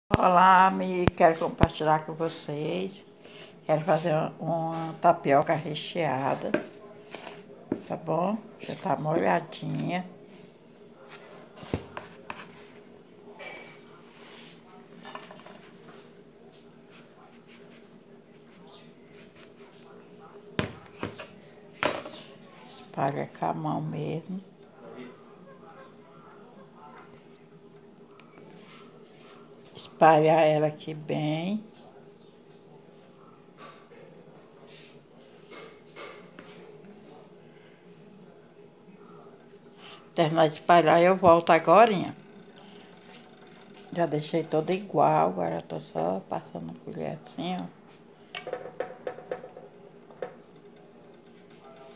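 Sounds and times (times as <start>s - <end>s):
faint rustles and soft scrapes: 3.7s - 5.1s, 10.2s - 20.3s, 28.2s - 30.0s, 31.8s - 39.8s.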